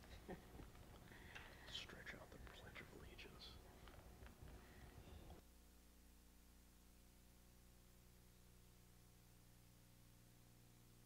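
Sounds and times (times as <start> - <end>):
low room hum: 0.0 - 11.0
people murmuring and whispering: 1.2 - 3.7.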